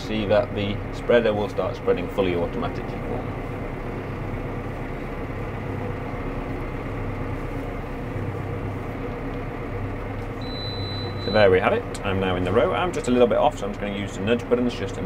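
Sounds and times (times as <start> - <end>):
tractor engine running: 0.0 - 15.0
short high beep: 10.4 - 11.5.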